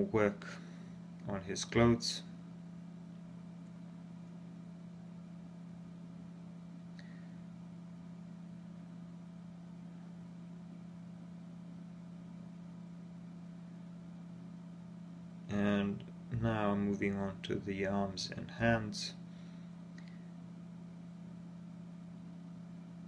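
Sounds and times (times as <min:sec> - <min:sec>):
low background hum: 0:00.0 - 0:23.0
faint click: 0:19.9 - 0:20.2.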